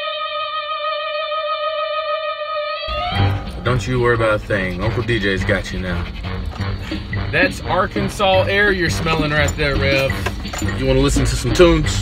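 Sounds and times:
steady electronic tone: 2.9 - 4.2.

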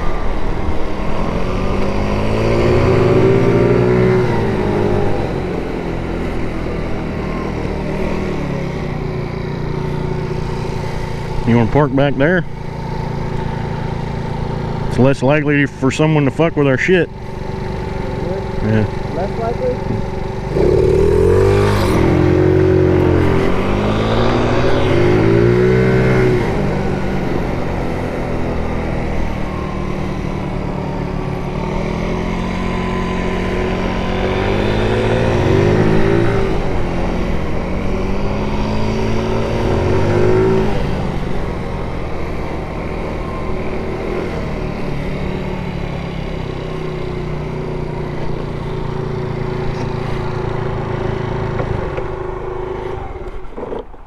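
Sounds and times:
scooter engine running: 0.0 - 54.0.

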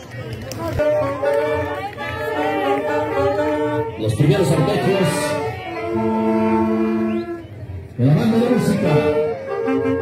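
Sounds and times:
marching band sustained chord: 0.6 - 10.0.

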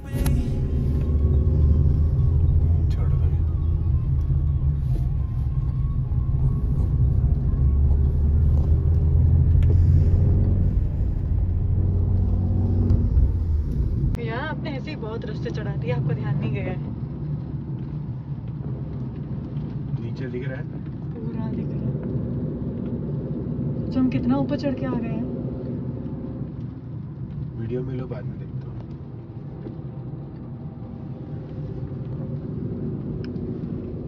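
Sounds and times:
car cabin rumble: 0.0 - 34.0
people talking: 14.2 - 16.8.

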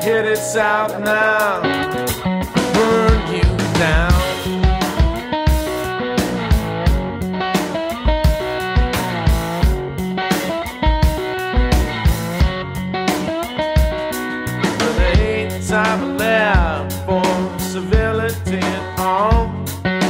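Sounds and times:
electric guitar: 0.0 - 20.0
steady drum beat: 0.0 - 20.0.

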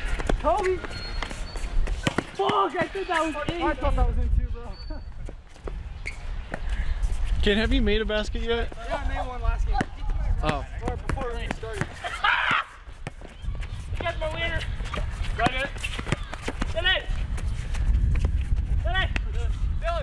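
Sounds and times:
basketball dribbling on asphalt: 0.0 - 3.7, 9.7 - 11.9, 12.9 - 17.4
players shouting and laughing: 2.2 - 4.2, 8.7 - 17.3
wind rumbling on microphone: 3.3 - 12.0, 12.8 - 20.0.

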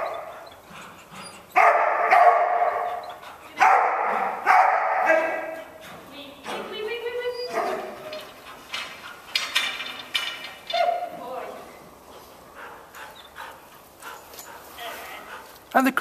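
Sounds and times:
dog barking: 1.6 - 5.6, 7.5 - 8.1
woman calling commands: 5.0 - 8.2.

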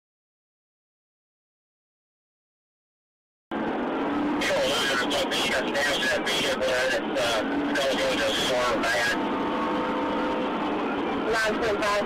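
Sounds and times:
in-car road and engine noise: 3.5 - 12.0
man talking: 4.4 - 9.2.

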